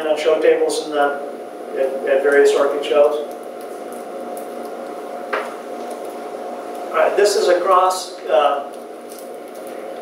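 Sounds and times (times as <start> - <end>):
room hum with faint whine: 0.0 - 10.0.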